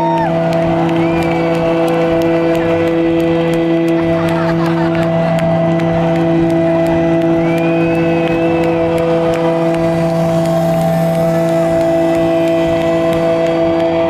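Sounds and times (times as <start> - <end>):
crowd noise: 0.0 - 14.0
rock band droning note: 0.0 - 14.0.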